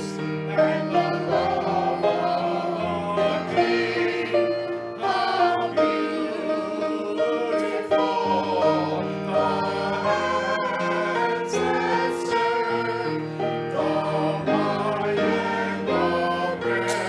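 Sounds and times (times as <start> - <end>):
mixed choir singing: 0.0 - 17.0.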